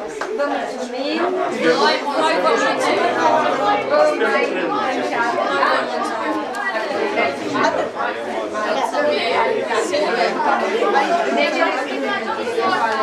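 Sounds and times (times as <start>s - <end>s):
audience chatting: 0.0s - 13.0s.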